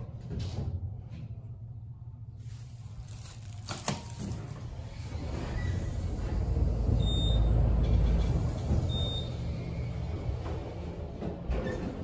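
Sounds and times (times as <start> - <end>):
elevator car rumbling: 4.2 - 12.0.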